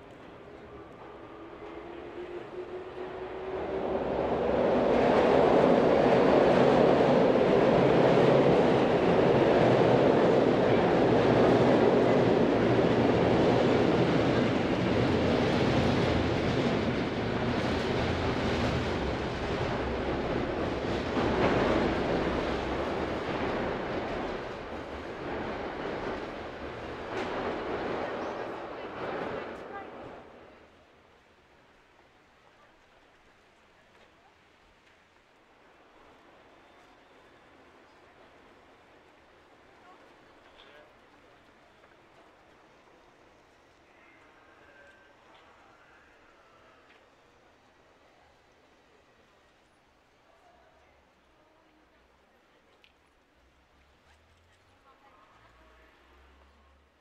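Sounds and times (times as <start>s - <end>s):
train passing over steel bridge: 0.0s - 57.0s.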